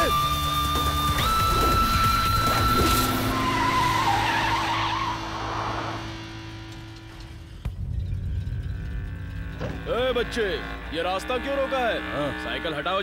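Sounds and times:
tyres screeching: 0.0s - 6.4s
low engine hum: 5.2s - 12.6s.

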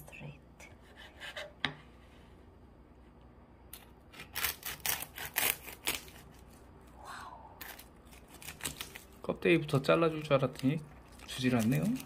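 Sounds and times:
knife crunching through crackling skin: 4.1s - 6.6s, 7.6s - 9.2s, 10.1s - 12.0s.

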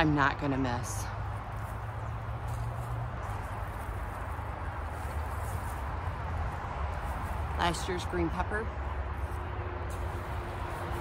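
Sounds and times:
distant highway traffic: 0.0s - 11.0s.

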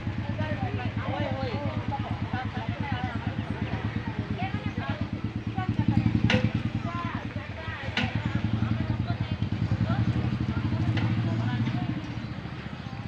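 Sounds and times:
engine running with low throb: 0.0s - 13.0s
faint voices talking: 0.0s - 13.0s.

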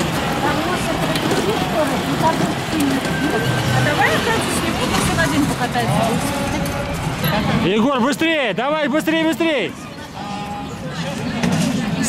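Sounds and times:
murmur of voices outdoors: 0.0s - 12.0s.

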